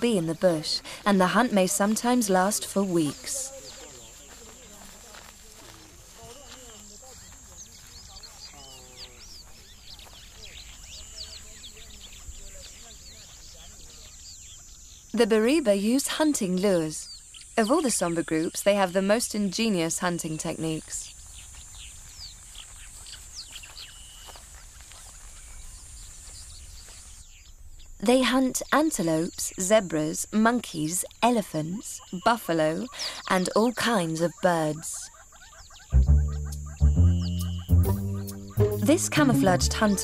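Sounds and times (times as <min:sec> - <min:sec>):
men talking and calling out: 0:00.0 - 0:14.1, 0:36.0 - 0:40.0
bird chirps and whistles: 0:36.1 - 0:38.8.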